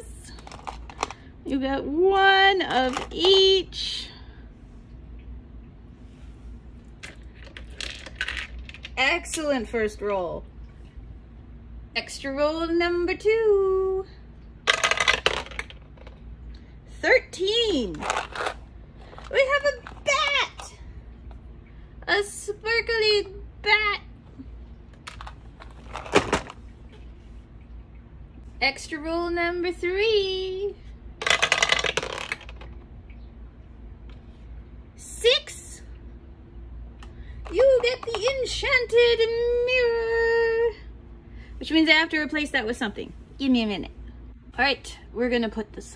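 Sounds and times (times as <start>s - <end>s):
small figurines clicking into plastic box: 31.2s - 32.8s.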